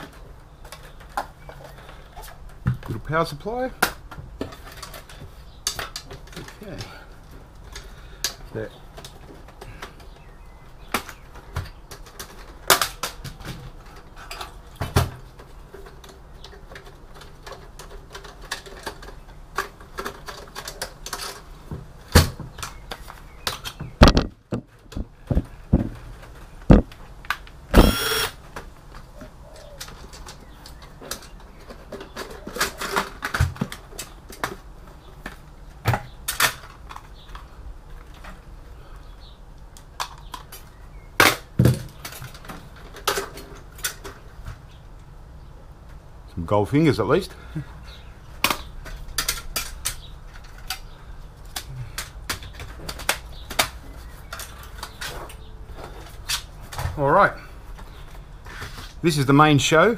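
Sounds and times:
cordless drill whir: 27.7 - 28.4.

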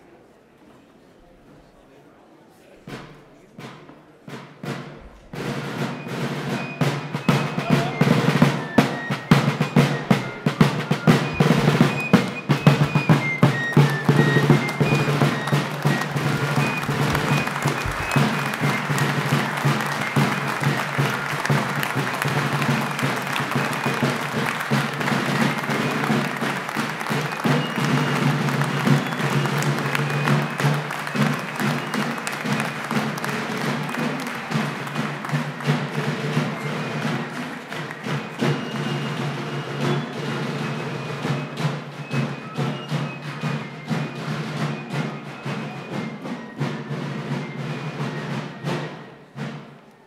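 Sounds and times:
fife and drum band playing a march: 3.0 - 49.9
crowd clapping along: 5.4 - 50.0.

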